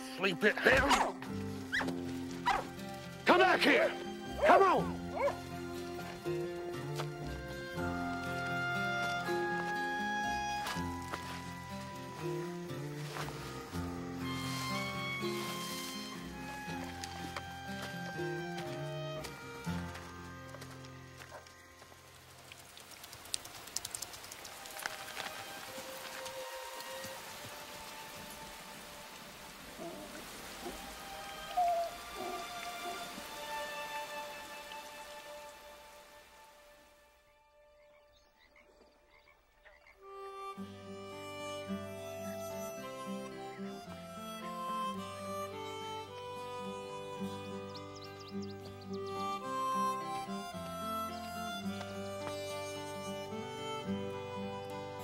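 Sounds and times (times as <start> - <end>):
music: 0.0 - 38.8, 39.8 - 55.0
steady rain falling: 1.2 - 37.2
frogs croaking: 7.6 - 43.8.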